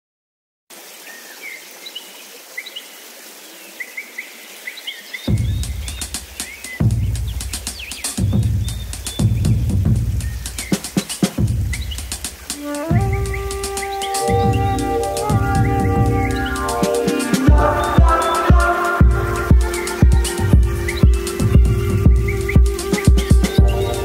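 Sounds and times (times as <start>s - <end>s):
soft hiss: 0.7s - 24.0s
deep electronic bass beat: 6.8s - 10.6s, 17.5s - 24.0s.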